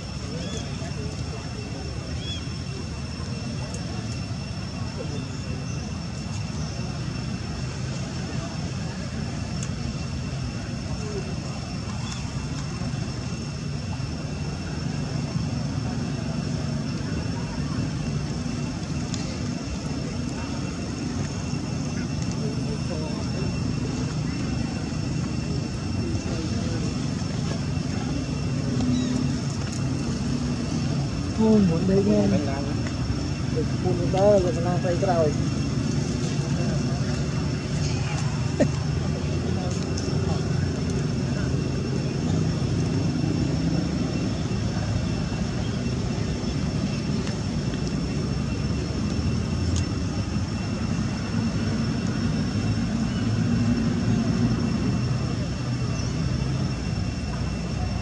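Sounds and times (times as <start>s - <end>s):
low engine rumble: 0.0s - 58.0s
steady high-pitched tone: 0.0s - 58.0s.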